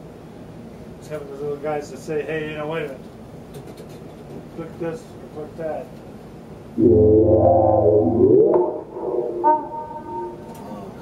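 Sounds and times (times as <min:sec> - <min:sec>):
short high synthesizer note: 0:06.8 - 0:11.0
synthesizer note sliding upward: 0:06.8 - 0:11.0.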